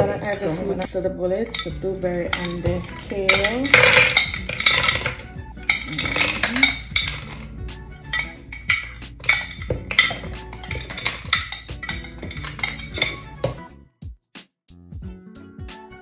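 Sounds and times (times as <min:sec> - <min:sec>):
background music: 0:00.0 - 0:16.0
glass bowl clinking on plastic cup: 0:01.5 - 0:07.5, 0:08.1 - 0:13.6.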